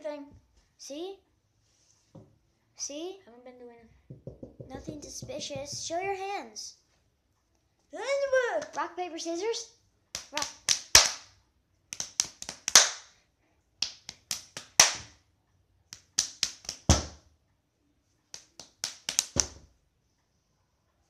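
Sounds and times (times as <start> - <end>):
hands clapping and slapping: 8.6 - 8.8, 10.1 - 13.1, 13.8 - 15.2, 15.9 - 17.2, 18.3 - 19.7.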